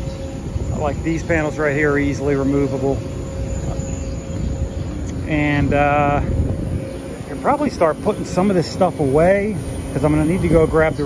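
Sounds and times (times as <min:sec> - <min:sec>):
low uneven rumble: 0:00.0 - 0:11.0
steady machine hum: 0:00.0 - 0:11.0.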